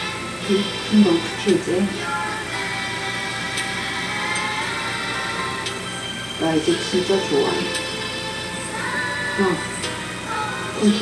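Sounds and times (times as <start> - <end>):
soft drama music on television: 0.0 - 11.0.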